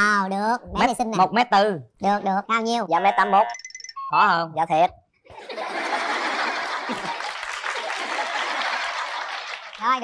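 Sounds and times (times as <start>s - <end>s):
audience applauding: 5.8s - 10.0s.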